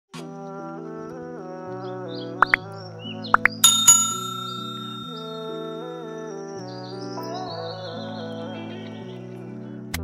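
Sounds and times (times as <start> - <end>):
calm music of held chords: 0.4 - 10.0
bell ding: 3.6 - 6.0.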